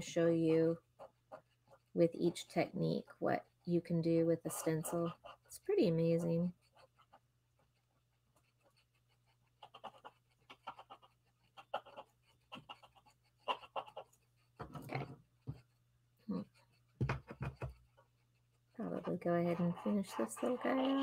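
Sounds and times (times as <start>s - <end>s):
pen scratching on cardstock: 4.4s - 21.0s.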